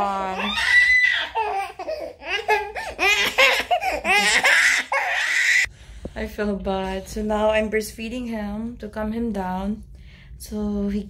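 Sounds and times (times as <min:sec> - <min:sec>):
baby laughing: 0:01.0 - 0:05.7.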